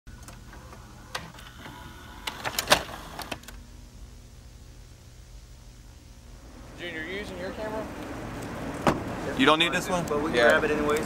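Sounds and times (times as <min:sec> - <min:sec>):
low steady hum: 0:00.1 - 0:11.0.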